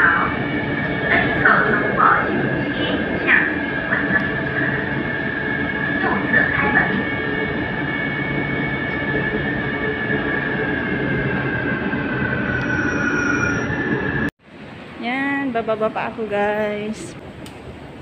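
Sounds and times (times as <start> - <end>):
high whine: 0.0 - 14.3
train running on rails: 0.0 - 18.0.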